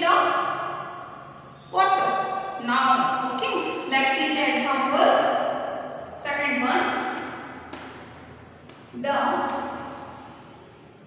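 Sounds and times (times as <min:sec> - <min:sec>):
woman speaking: 0:00.0 - 0:00.5, 0:01.8 - 0:05.3, 0:06.2 - 0:07.4, 0:08.9 - 0:10.0.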